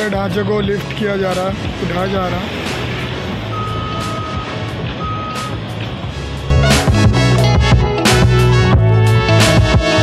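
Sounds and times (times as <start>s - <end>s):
heavy construction machinery running: 0.0s - 8.6s
loud music: 0.0s - 10.0s
electronic warning beeps: 3.5s - 5.6s.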